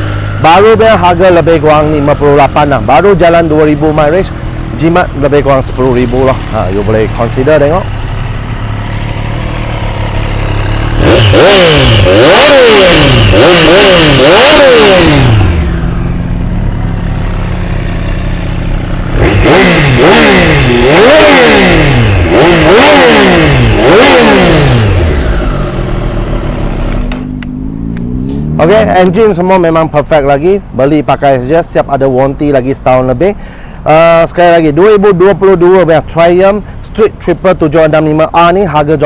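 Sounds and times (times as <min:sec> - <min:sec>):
motorcycle engine idling and revving: 0:00.0 - 0:39.0.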